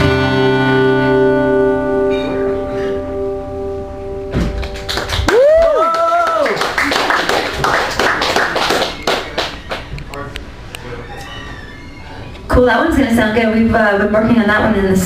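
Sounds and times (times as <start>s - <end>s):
guitar chord ringing: 0.0s - 5.1s
audience applause: 4.6s - 9.9s
person whooping: 5.2s - 6.7s.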